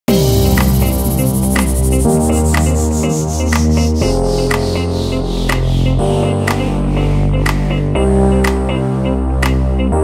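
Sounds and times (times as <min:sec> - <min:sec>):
held synth chords: 0:00.1 - 0:10.0
steady bass: 0:00.1 - 0:10.0.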